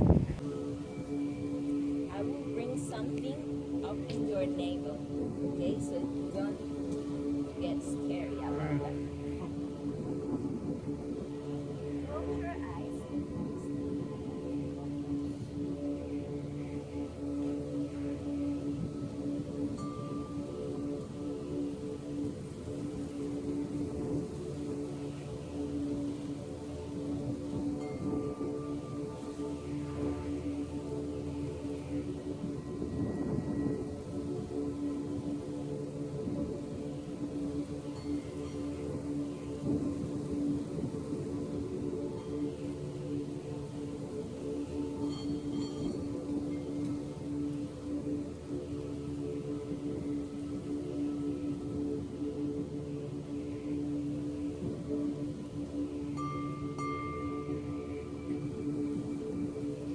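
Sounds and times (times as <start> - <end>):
meditative drone of sustained tones: 0.0 - 59.9.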